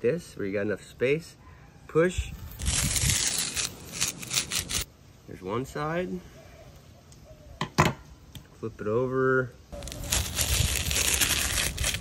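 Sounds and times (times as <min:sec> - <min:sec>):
skin tearing from meat: 0:02.5 - 0:04.9, 0:09.8 - 0:12.0.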